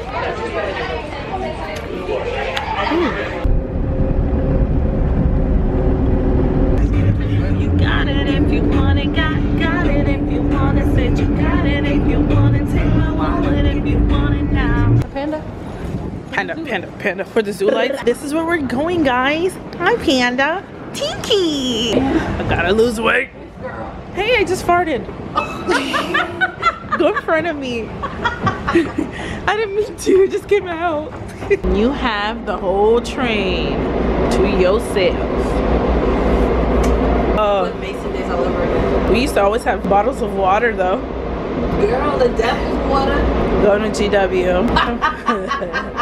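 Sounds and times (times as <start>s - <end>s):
people talking: 0.0s - 3.5s, 15.0s - 15.5s, 16.3s - 25.1s, 26.8s - 28.0s, 28.8s - 35.6s, 37.4s - 41.0s, 41.7s - 46.0s
vehicle rumble from inside: 3.0s - 16.2s
steady hum: 3.1s - 16.7s
woman laughing hard: 25.4s - 27.3s, 28.0s - 29.2s, 44.8s - 46.0s.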